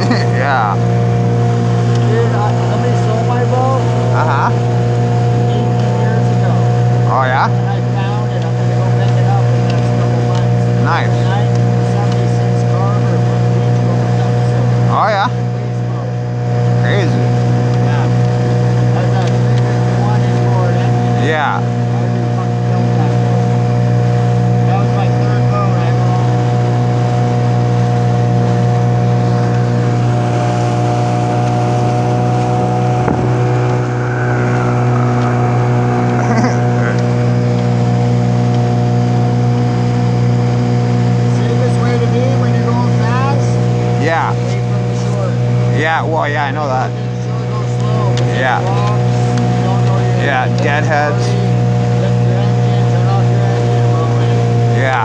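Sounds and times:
outboard motor droning: 0.0 - 55.0.

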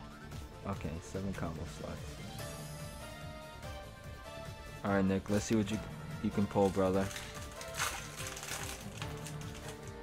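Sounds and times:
background music: 0.0 - 10.0
foil wrapper crinkling: 6.5 - 9.9.

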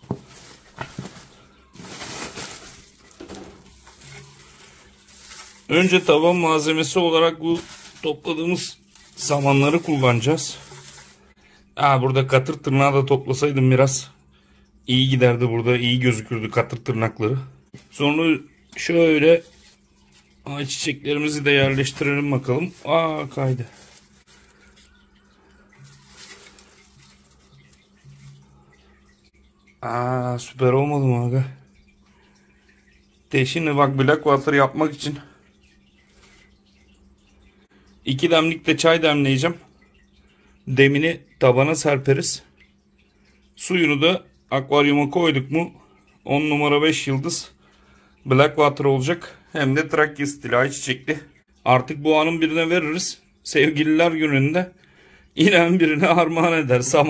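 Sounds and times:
dry straw rustling: 0.0 - 6.7, 7.5 - 8.2, 8.8 - 11.3, 19.4 - 20.3, 21.7 - 25.0, 25.8 - 28.5.

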